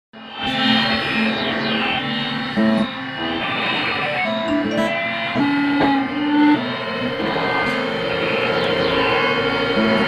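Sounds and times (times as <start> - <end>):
ambient electronic drone: 0.2 - 10.0
falling high synth sweeps: 0.2 - 10.0.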